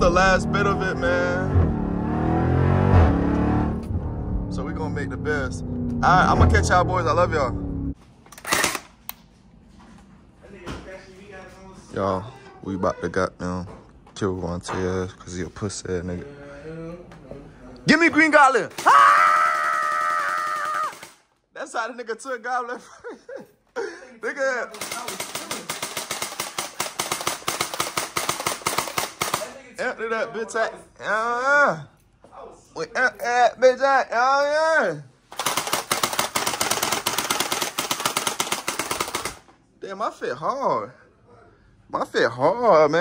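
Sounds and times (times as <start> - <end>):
toy blaster rapid firing: 8.4 - 8.9, 18.8 - 21.2, 24.7 - 29.6, 35.3 - 39.4.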